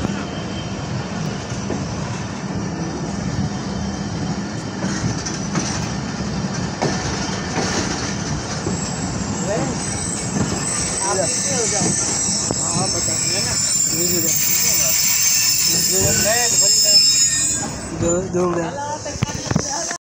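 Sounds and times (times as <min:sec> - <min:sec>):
train wheels rumbling on track: 0:00.0 - 0:20.0
high-pitched wheel squeal: 0:08.5 - 0:18.4.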